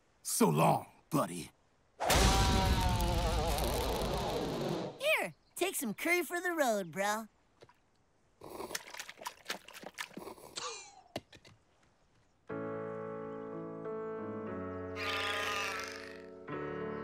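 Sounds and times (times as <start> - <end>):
voice crying and wailing: 2.1 - 4.8, 15.0 - 16.2
slow sad music chords: 12.5 - 15.0.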